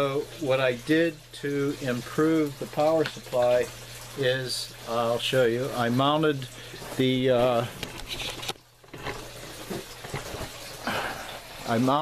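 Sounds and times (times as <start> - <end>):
running water hiss: 0.0 - 12.0.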